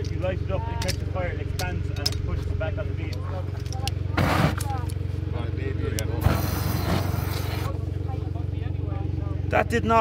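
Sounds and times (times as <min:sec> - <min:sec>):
steady low hum: 0:00.0 - 0:10.0
gas hissing as it burns: 0:06.2 - 0:07.8.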